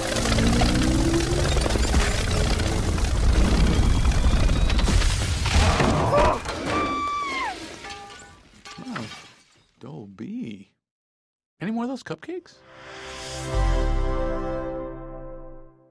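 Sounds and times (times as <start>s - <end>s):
shattering crash: 0.0s - 9.6s.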